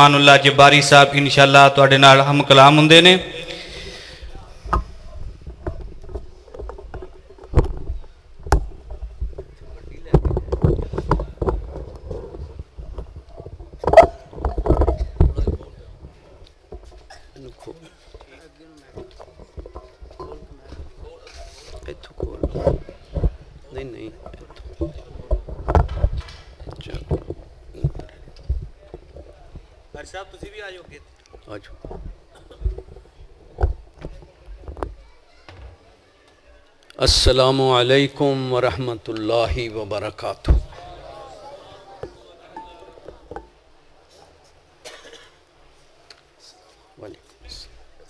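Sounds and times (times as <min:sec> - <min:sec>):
microphone handling knocks: 0:04.6 - 0:17.1, 0:24.2 - 0:29.7, 0:40.4 - 0:40.8.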